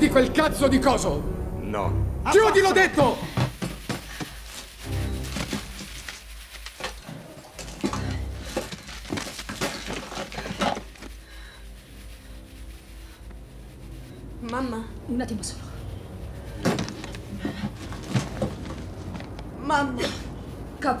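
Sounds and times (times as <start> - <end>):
tense film music: 0.0 - 3.4, 4.0 - 9.4, 10.1 - 21.0.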